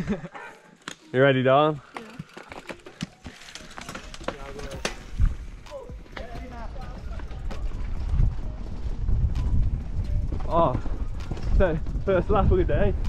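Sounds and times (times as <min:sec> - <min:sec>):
bike rattling clicks: 0:01.8 - 0:13.0
tyre and wind rumble: 0:04.1 - 0:13.0.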